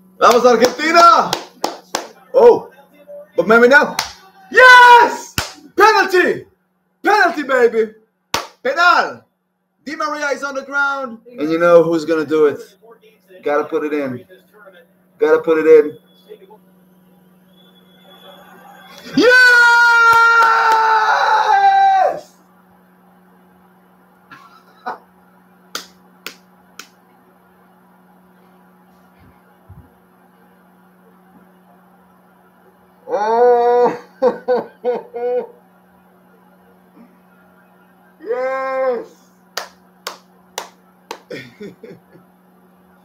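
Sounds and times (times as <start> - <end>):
faint steady hum: 0.0 - 43.0
man clapping hands: 0.2 - 2.2, 3.9 - 4.3, 5.3 - 5.7, 8.3 - 8.7, 20.0 - 20.9, 25.7 - 27.0, 39.5 - 41.4
man screaming in celebration: 4.2 - 6.2, 18.8 - 22.3, 38.2 - 39.2.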